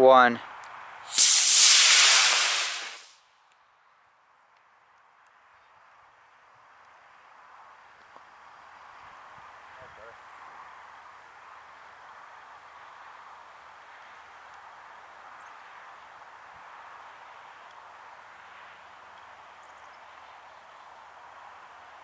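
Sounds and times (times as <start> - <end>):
rocket motor rushing: 1.1 - 3.1.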